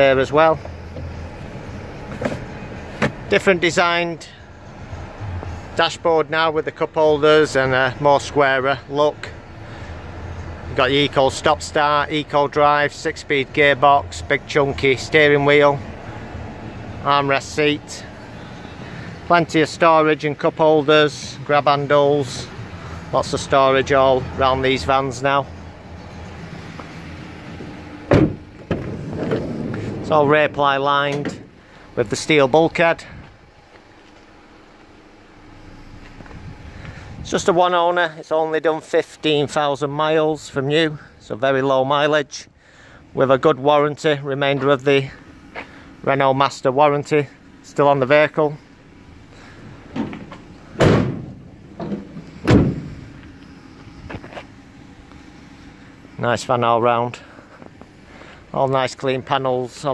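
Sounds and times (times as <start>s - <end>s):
van doors slamming: 0.0s - 3.6s, 27.2s - 31.6s, 49.7s - 53.2s
low background rumble: 0.0s - 38.6s, 42.5s - 59.8s.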